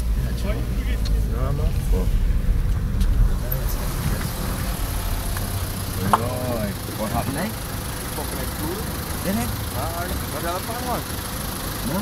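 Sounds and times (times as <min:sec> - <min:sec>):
car engine rumble inside cabin: 0:00.0 - 0:12.0.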